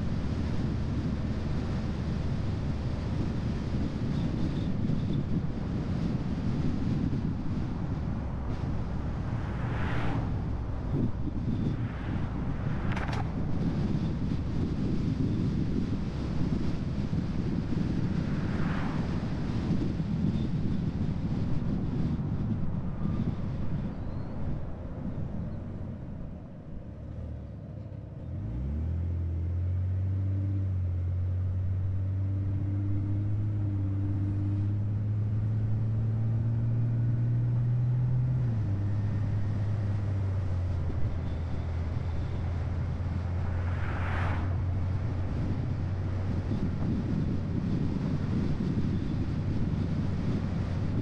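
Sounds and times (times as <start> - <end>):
car road noise: 0.0 - 51.0
car engine accelerating: 28.2 - 51.0.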